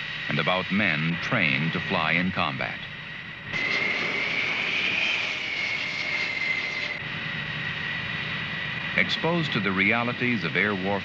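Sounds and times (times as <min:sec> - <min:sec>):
jet turbine whine: 0:00.0 - 0:11.0
rushing noise: 0:00.0 - 0:11.0.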